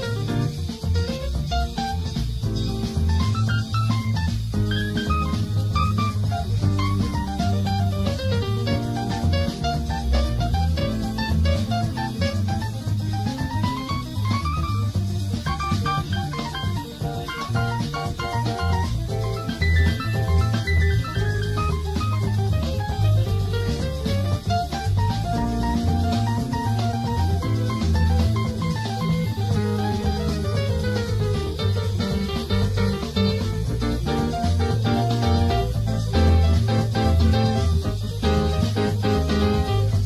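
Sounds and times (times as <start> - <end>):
bass guitar: 0.0 - 40.0
drum kit: 0.0 - 40.0.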